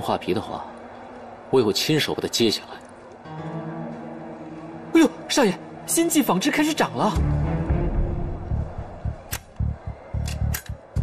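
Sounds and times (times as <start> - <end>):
tense background music: 7.1 - 11.0.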